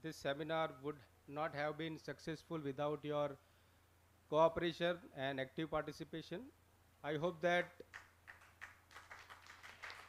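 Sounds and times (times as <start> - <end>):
low electrical hum: 0.0 - 10.0
audience clapping: 7.9 - 10.0.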